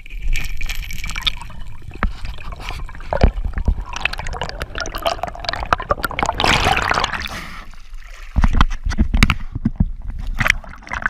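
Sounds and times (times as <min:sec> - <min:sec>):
underwater rumble and gurgling: 0:00.0 - 0:11.0.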